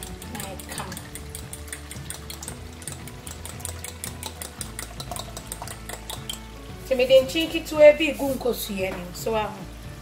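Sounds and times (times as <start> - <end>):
fork whisking egg in glass bowl: 0.0 - 6.6
stew simmering in a pan: 0.0 - 10.0.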